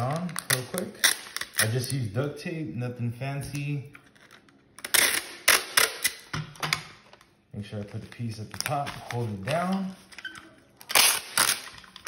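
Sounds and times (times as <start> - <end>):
duct tape ripping: 0.0 - 1.9, 4.8 - 6.3, 10.7 - 12.0.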